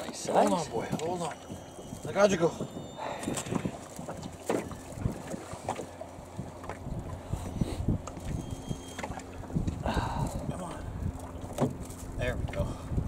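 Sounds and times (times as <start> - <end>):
wind rumble on microphone: 0.7 - 13.0.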